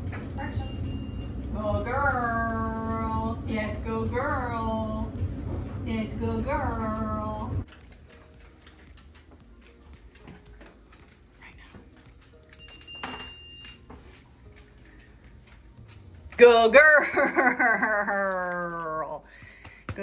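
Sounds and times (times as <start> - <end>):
high electronic beep: 0.6 - 1.4
woman speaking in sing-song voice: 1.5 - 5.2, 5.8 - 7.7, 16.4 - 17.4.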